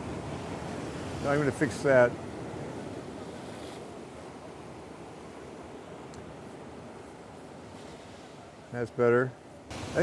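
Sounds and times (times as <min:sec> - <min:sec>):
ocean surf breaking: 0:00.0 - 0:10.0.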